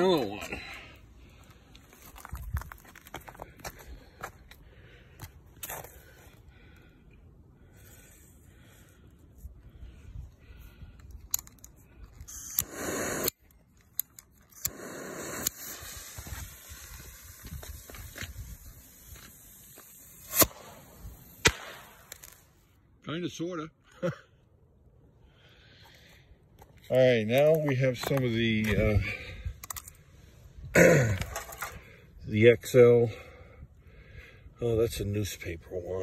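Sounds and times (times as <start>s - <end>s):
crackling and scraping on snow: 11.1s - 21.1s
rocket fuse hissing: 12.2s - 13.5s, 14.5s - 22.5s
small pop: 21.4s - 22.3s.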